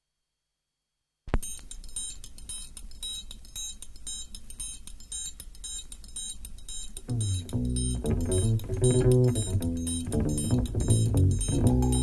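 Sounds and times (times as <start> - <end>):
sparse beat of high ticks: 1.4 - 12.0.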